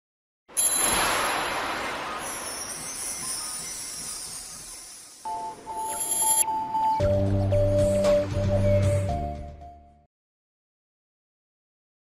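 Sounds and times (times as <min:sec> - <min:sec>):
whoosh: 0:00.6 - 0:03.5
intro jingle music: 0:00.6 - 0:09.9.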